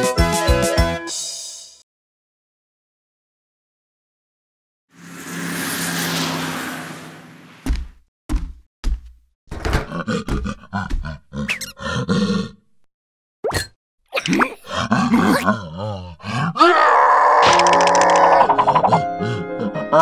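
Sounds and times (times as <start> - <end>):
cartoon gibberish grunts and cries: 9.8 - 12.8, 14.2 - 20.0.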